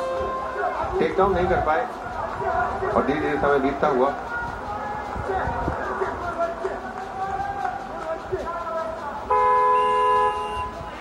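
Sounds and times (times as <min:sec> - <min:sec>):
electronic horn blast: 0:00.0 - 0:00.8, 0:09.3 - 0:10.8.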